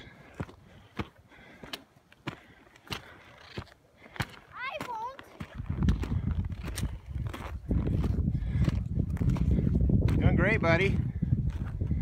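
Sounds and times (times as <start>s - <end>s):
boots crunching on snow: 0.2s - 10.3s.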